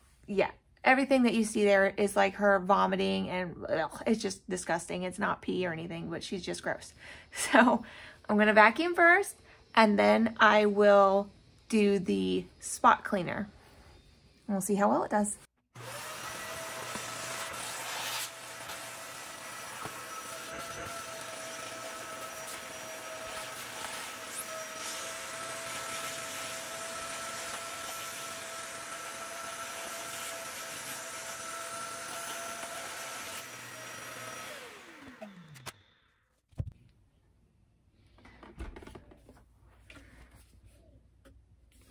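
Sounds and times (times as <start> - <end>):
handheld vacuum cleaner running: 15.7 - 35.8
vacuum motor winding down: 15.7 - 35.8.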